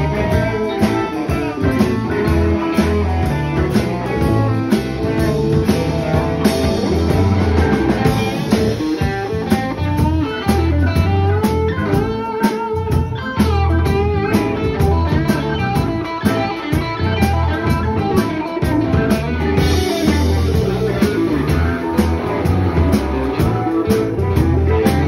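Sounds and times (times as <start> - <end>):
guitar bent wavering notes: 0.0 - 25.0
live blues band playing: 0.0 - 25.0.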